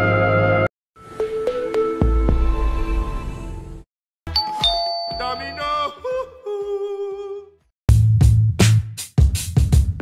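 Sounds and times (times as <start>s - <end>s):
two-note doorbell chime: 4.3s - 5.9s.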